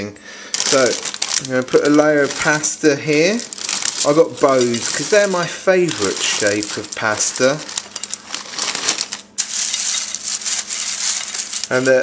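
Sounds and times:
dry pasta pieces clattering: 0:00.5 - 0:12.0.

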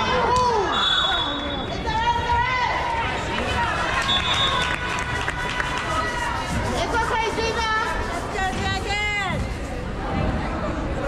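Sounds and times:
crowd voices din: 0:00.0 - 0:11.0.

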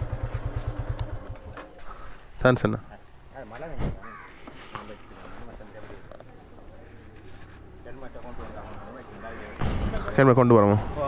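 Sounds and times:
low outdoor background noise: 0:00.0 - 0:11.0
faint crow cawing: 0:04.0 - 0:05.4.

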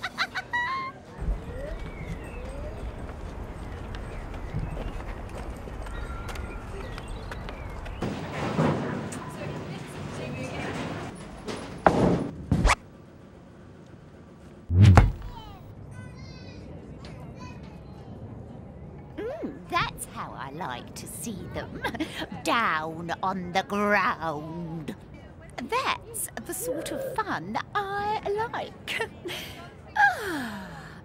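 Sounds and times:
heavy low thud: 0:14.7 - 0:15.6
low rumble: 0:14.7 - 0:15.6
sharp thuds: 0:14.7 - 0:15.6.

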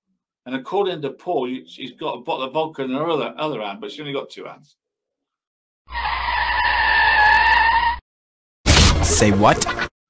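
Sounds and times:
car tyre squealing: 0:05.9 - 0:08.0.

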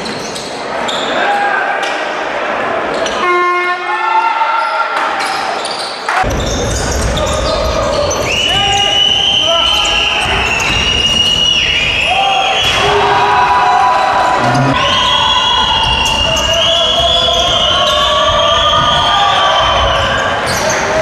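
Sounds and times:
shoe squeaks: 0:00.0 - 0:01.2, 0:04.6 - 0:07.4, 0:08.1 - 0:12.7, 0:14.4 - 0:21.0
crowd noise: 0:00.0 - 0:21.0
people calling: 0:05.2 - 0:21.0.

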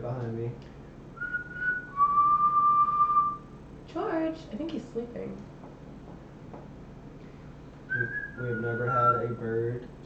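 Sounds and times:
person whistling a steady note: 0:01.2 - 0:03.5, 0:07.9 - 0:09.7.

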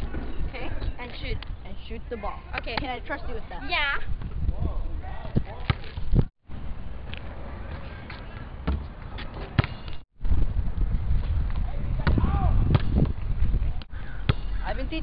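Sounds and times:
wind rumble on microphone: 0:03.2 - 0:09.6, 0:10.2 - 0:15.0
basketball bouncing on asphalt: 0:08.2 - 0:10.0.

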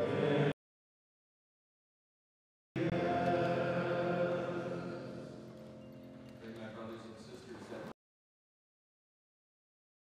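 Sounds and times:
choir singing a hymn chord: 0:00.0 - 0:00.5, 0:02.8 - 0:05.8.

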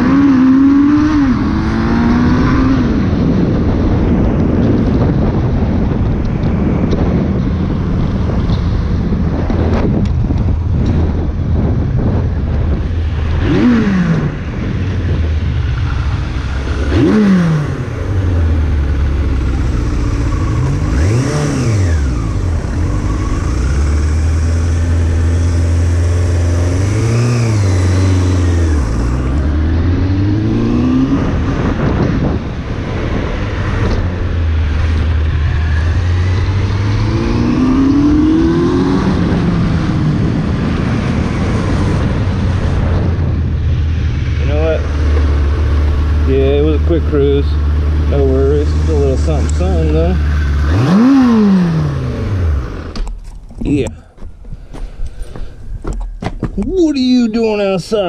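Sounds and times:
motorcycle engine revving: 0:00.0 - 0:54.1
wind rushing over microphone: 0:00.0 - 0:58.0.

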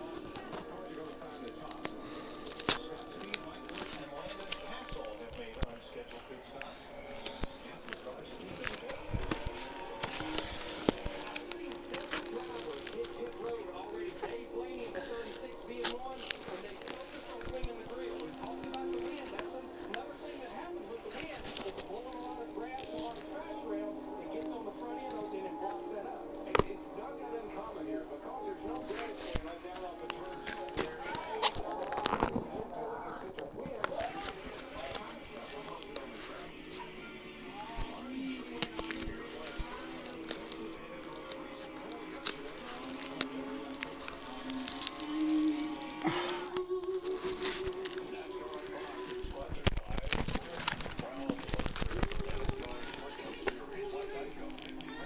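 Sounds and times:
handling clicks and rustles: 0:00.0 - 0:25.8, 0:28.4 - 0:55.0
background music: 0:00.0 - 0:55.0
packaging crinkling and tearing: 0:00.0 - 0:55.0
voices murmuring: 0:00.0 - 0:55.0.

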